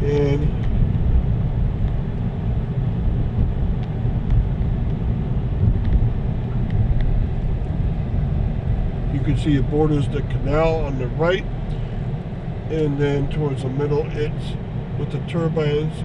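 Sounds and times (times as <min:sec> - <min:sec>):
car driving from inside cabin: 0:00.0 - 0:16.0.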